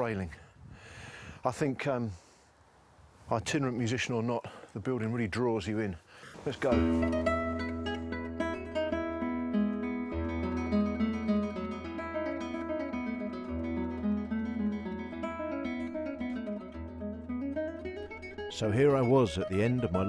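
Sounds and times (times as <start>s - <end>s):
acoustic guitar picking: 6.7s - 20.0s.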